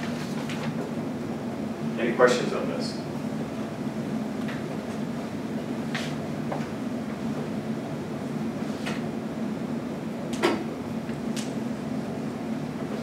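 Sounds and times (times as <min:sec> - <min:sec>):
ventilation fans humming: 0:00.0 - 0:13.0.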